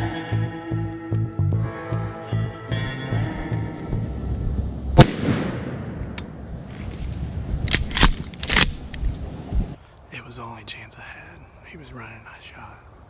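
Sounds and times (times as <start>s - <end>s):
background music: 0.0s - 5.3s
shotgun blast with echo: 5.0s - 6.0s.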